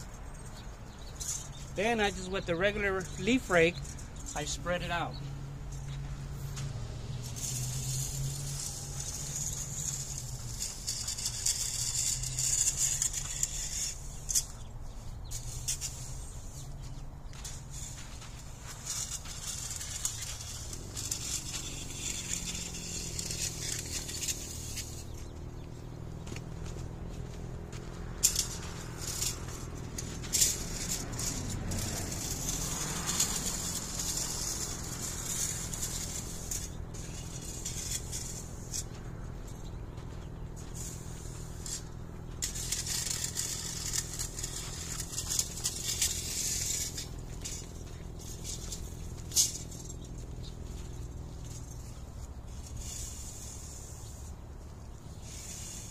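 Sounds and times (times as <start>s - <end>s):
rake scraping gritty mulch: 0.0s - 55.9s.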